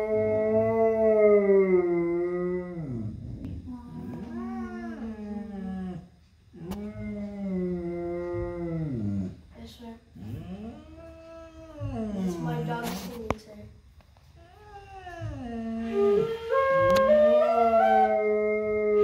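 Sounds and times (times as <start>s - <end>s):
dog howling: 0.0s - 6.0s, 6.6s - 9.4s, 10.3s - 12.7s, 14.5s - 19.0s
flute playing: 15.8s - 19.0s.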